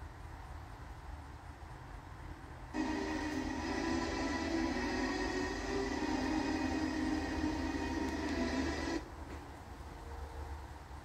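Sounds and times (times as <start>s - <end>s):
loud held music chord: 2.8s - 9.0s.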